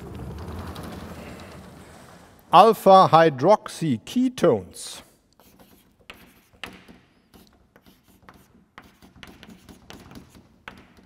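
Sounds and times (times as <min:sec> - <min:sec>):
sliding chalkboard panels rumbling: 0:00.0 - 0:02.6.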